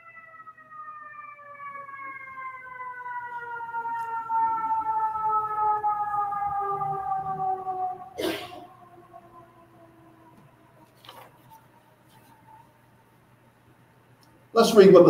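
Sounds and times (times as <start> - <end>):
siren falling in pitch: 0.0 - 11.0.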